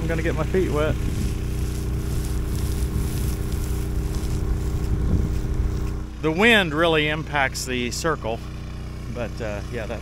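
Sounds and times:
distant pump engine running: 0.0 - 10.0
wind buffeting microphone: 0.7 - 6.0.

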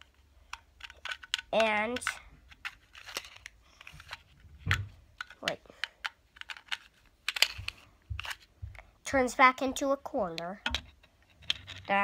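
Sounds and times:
small clicks of plastic gadget: 0.0 - 8.5.

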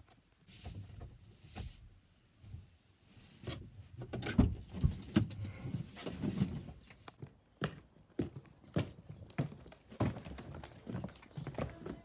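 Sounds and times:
footsteps on hard floor: 7.6 - 12.0.

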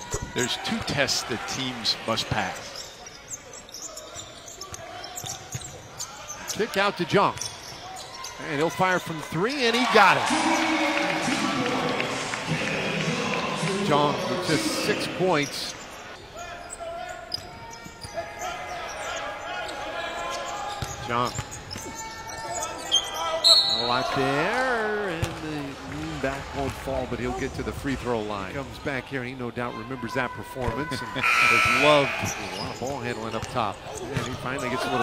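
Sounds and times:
arena background noise: 0.0 - 35.0
sneakers squeaking: 2.5 - 8.7, 15.3 - 24.4, 31.2 - 35.0.

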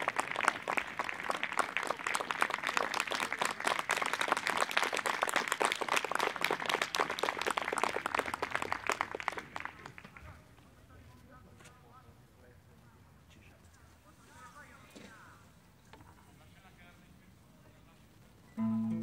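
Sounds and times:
audience applauding: 0.0 - 10.4.

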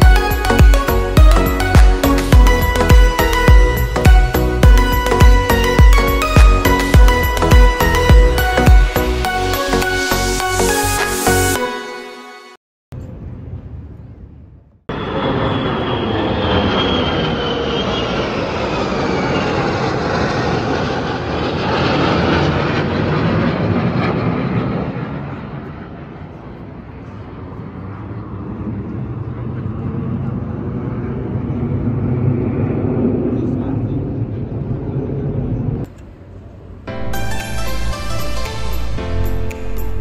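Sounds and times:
jet aircraft flying over: 0.0 - 12.1, 14.9 - 40.0.

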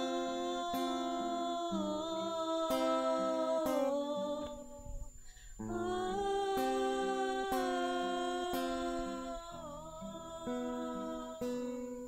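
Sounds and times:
acoustic guitar strumming: 0.0 - 12.0
woman singing a long note: 0.0 - 12.0.

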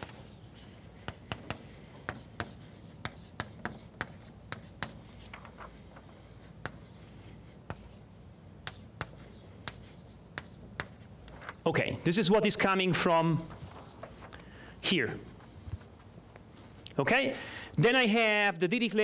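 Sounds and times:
chalk tapping and scraping on blackboard: 0.0 - 11.4.

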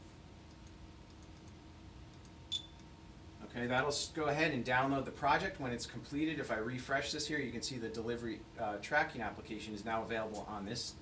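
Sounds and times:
faint room hum: 0.0 - 11.0
high-pitched scanner beep: 2.5 - 2.7.

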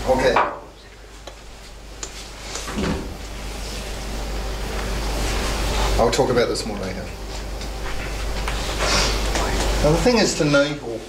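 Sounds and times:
steady room hum: 0.0 - 11.0.

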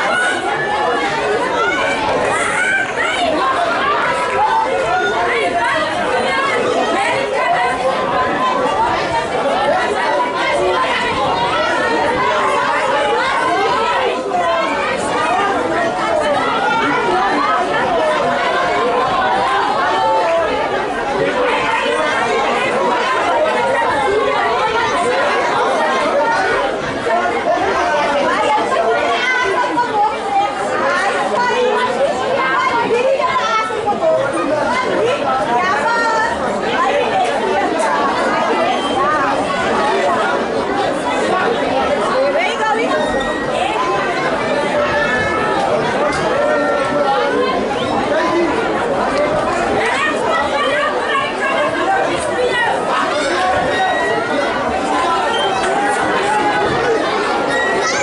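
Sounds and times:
babble of spectators chatter: 0.0 - 58.0.

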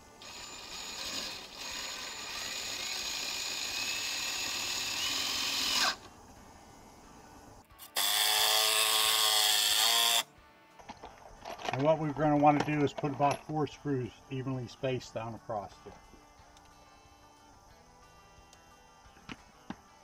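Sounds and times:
cordless drill driving screws: 0.2 - 6.1, 7.8 - 10.3.

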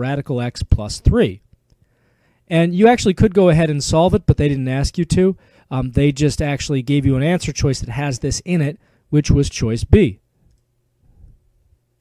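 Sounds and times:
faint low room hum: 0.0 - 12.0.

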